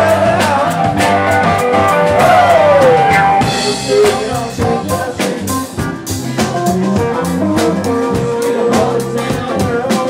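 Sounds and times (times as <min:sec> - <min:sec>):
bass: 0:00.0 - 0:10.0
drum kits beat: 0:00.0 - 0:10.0
electric guitars: 0:00.0 - 0:10.0
keyboards: 0:00.0 - 0:10.0.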